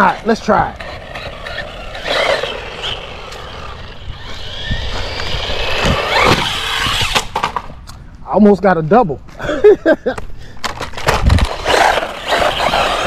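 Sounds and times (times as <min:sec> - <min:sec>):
electric motor whining: 0:00.0 - 0:07.4, 0:11.5 - 0:13.0
tyre noise on asphalt: 0:00.0 - 0:08.1, 0:10.6 - 0:13.0.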